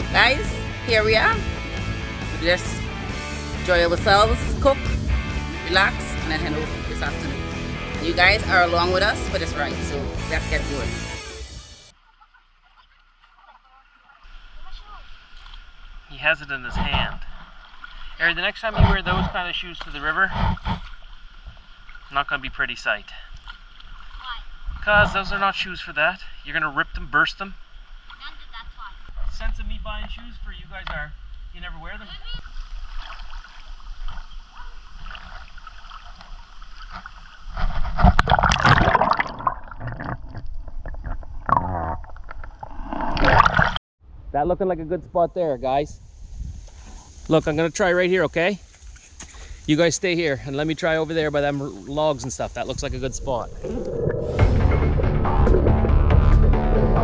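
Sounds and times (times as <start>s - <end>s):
river ambience: 0.0s - 29.2s, 30.6s - 43.8s, 46.0s - 56.0s
rushing water: 0.0s - 29.2s, 32.4s - 41.6s, 49.8s - 55.8s
underwater gurgling: 32.4s - 43.8s, 51.8s - 56.0s
low rumble: 52.3s - 57.0s.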